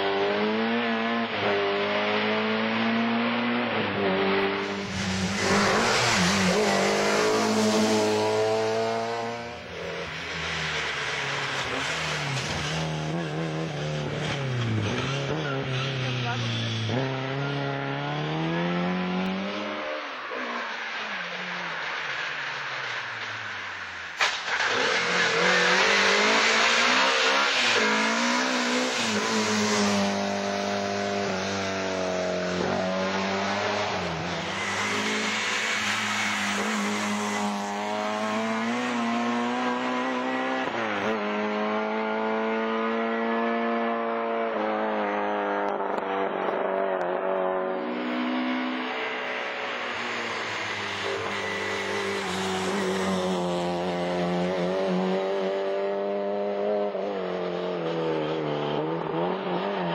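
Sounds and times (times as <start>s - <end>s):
rally car engine revving: 0.0s - 59.9s
road and tyre noise: 0.0s - 59.9s.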